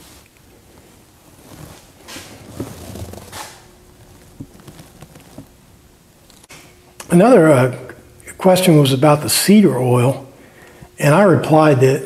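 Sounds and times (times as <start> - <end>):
soft footsteps: 0.7 - 6.5
handling rustles: 1.2 - 6.5.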